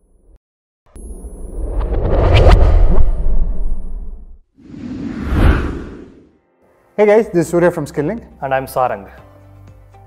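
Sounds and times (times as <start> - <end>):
whoosh sound effect: 1.6 - 6.3.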